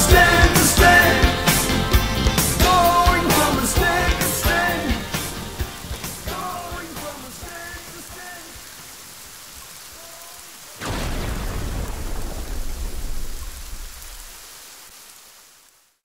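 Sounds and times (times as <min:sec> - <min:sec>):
steady rain: 0:00.0 - 0:16.0
loud thunderclap rumbling: 0:10.8 - 0:14.3.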